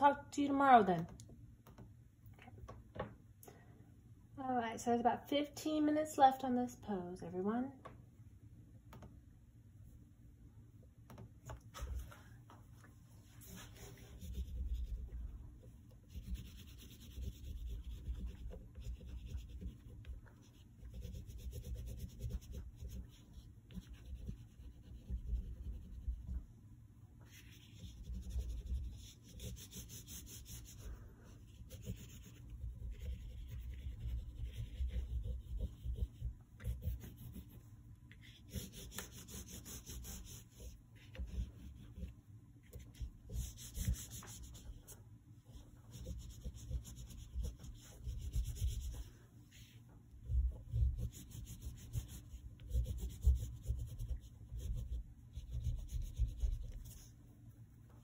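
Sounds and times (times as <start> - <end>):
oil pastel scratching on paper: 13.2 - 26.5, 27.2 - 58.0.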